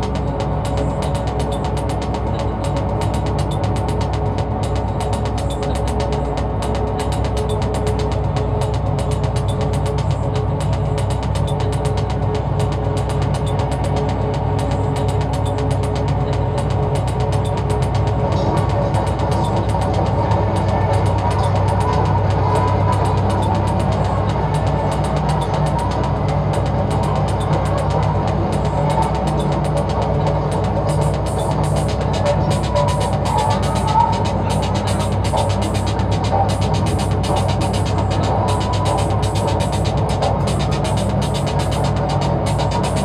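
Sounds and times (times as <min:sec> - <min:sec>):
electronic music: 0:00.0 - 0:43.0
heavy sustained bass: 0:00.0 - 0:43.0.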